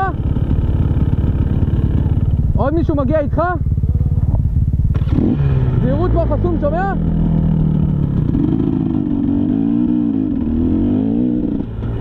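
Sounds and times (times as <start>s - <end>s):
dirt bike engine idling: 0.0s - 12.0s.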